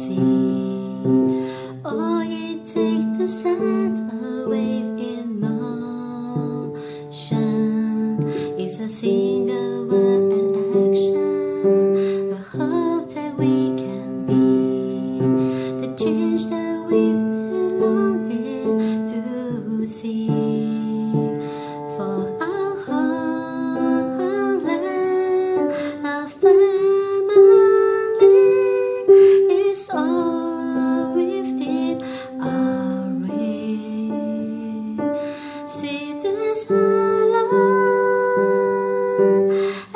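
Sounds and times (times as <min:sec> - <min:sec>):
piano block chords: 0:00.0 - 0:39.9
woman singing: 0:00.0 - 0:39.9.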